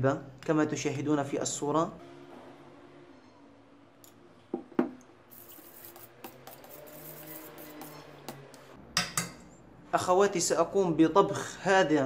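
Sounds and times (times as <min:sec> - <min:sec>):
metal spoon stirring in a pot: 0:05.3 - 0:09.4.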